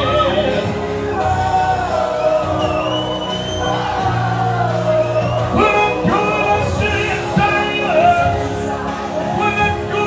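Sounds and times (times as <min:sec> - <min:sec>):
bass guitar: 0:00.0 - 0:10.0
drums: 0:00.0 - 0:10.0
man singing: 0:05.0 - 0:10.0.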